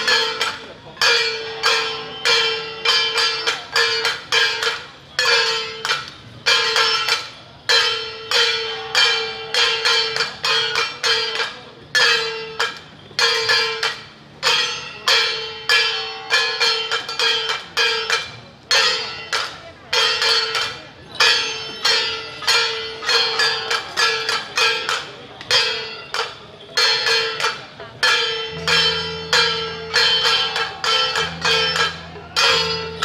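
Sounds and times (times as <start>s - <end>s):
gong and cymbal strikes: 27.2s - 33.0s.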